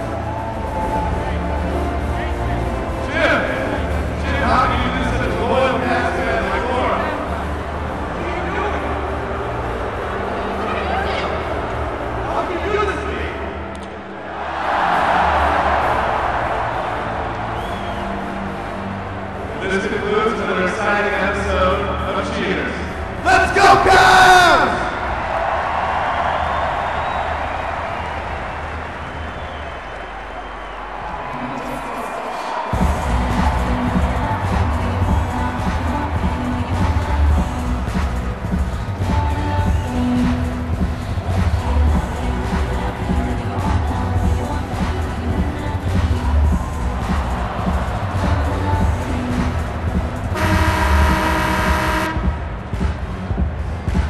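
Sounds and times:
crowd cheering: 0:00.0 - 0:54.0
music with heavy bass beat: 0:32.7 - 0:54.0
loud horn blast: 0:50.3 - 0:52.4.

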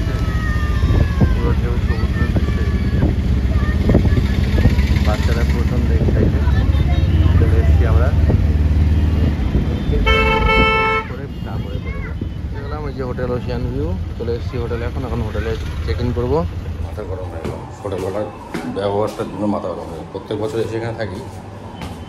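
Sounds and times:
moving car rumble: 0:00.0 - 0:19.0
street traffic: 0:00.0 - 0:22.0
vehicle horn: 0:09.8 - 0:11.8.

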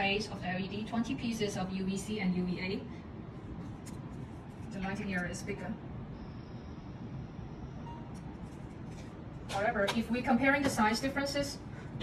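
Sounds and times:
faint high-pitched whine: 0:00.0 - 0:11.7
low background rumble: 0:00.0 - 0:12.0
brief short tone: 0:07.8 - 0:08.2.

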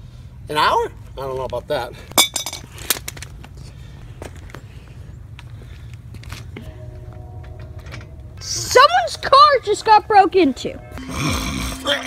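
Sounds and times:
metal clank with ring: 0:02.2 - 0:02.6
metal clinks and knocks: 0:02.2 - 0:02.7.

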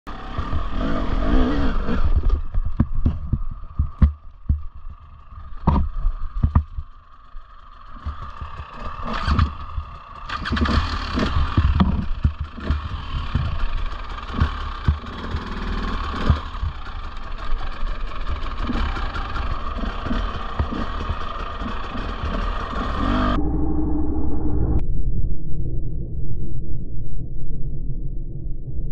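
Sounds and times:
motorbike engine revving: 0:00.1 - 0:23.4
knocks and clatter on rock: 0:02.1 - 0:07.0, 0:07.9 - 0:22.1.

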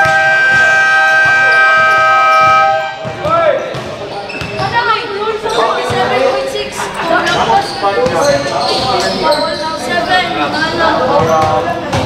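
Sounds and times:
basketball buzzer tone: 0:00.0 - 0:04.8
basketballs bouncing: 0:00.0 - 0:06.4, 0:07.9 - 0:09.1, 0:11.1 - 0:12.0
voices: 0:00.0 - 0:12.0.

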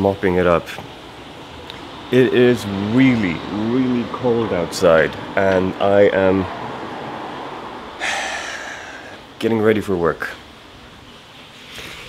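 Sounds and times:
steady background hiss: 0:00.0 - 0:12.0
man's sharp breath: 0:08.0 - 0:09.3.

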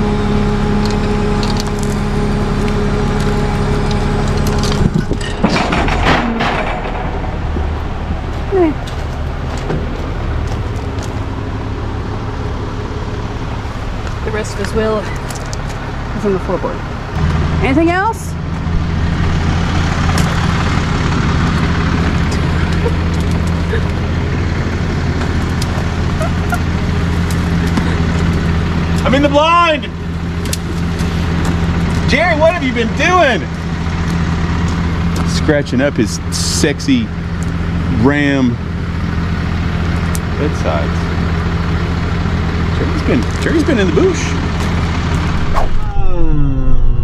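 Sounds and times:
vehicle engine idling: 0:00.0 - 0:47.0.

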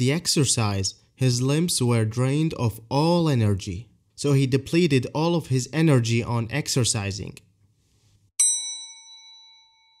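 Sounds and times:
bright bell-like ding: 0:08.4 - 0:10.0.

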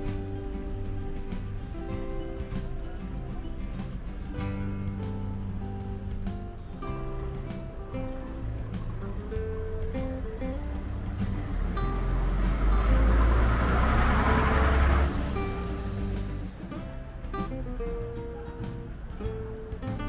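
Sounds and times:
bus driving past: 0:00.0 - 0:20.0
guitar music: 0:00.0 - 0:20.0.

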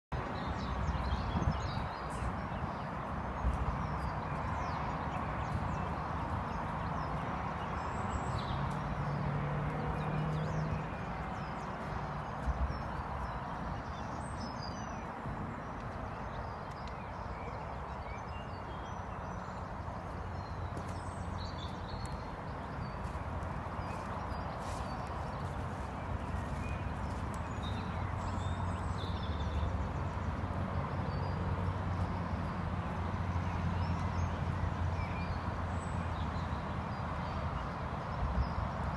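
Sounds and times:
horse hooves on grass: 0:00.2 - 0:18.4, 0:19.5 - 0:36.3
birds chirping: 0:00.2 - 0:37.7
horse hoofbeats on soft earth: 0:20.6 - 0:29.4.

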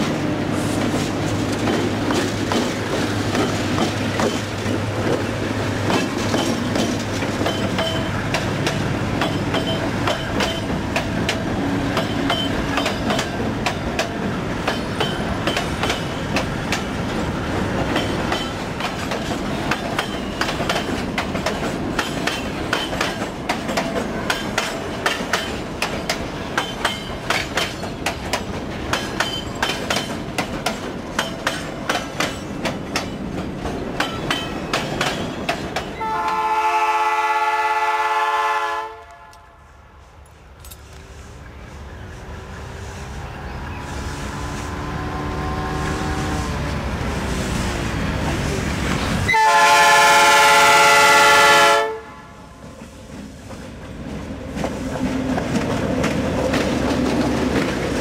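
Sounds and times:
train wheels clicking over rail joints: 0:00.0 - 0:36.4, 0:52.6 - 0:58.0
locomotive air horn blast: 0:36.0 - 0:39.8, 0:43.8 - 0:46.6, 0:49.3 - 0:52.4.

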